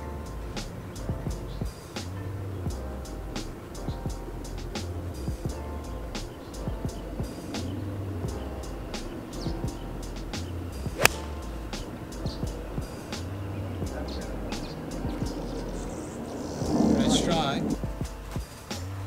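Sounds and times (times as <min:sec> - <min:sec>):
background music with steady beat: 0:00.0 - 0:19.0
golf club striking ball: 0:11.0 - 0:12.1.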